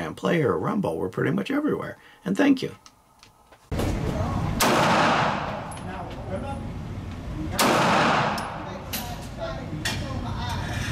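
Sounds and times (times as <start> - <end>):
loud range noise: 2.8 - 10.9
pistol shot with echo: 4.6 - 5.7, 7.6 - 8.7.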